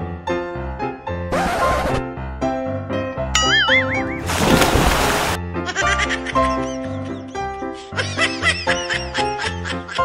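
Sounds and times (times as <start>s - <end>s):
playful background music: 0.1s - 10.0s
person splashing into water: 3.8s - 5.4s.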